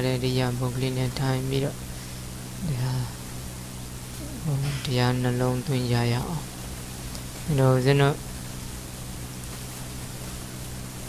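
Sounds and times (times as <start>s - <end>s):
low electrical hum: 0.0s - 11.0s
microphone hiss: 0.0s - 11.0s.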